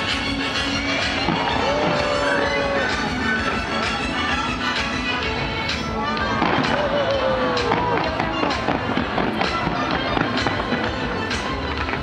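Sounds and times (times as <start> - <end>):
music playing: 0.0 - 12.0
fireworks bursting with loud bangs: 0.1 - 4.4, 6.2 - 12.0.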